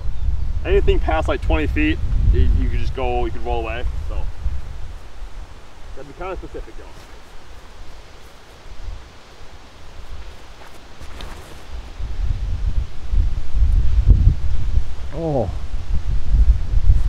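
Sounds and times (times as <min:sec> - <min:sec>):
wind on microphone: 0:00.0 - 0:06.8, 0:09.8 - 0:17.0.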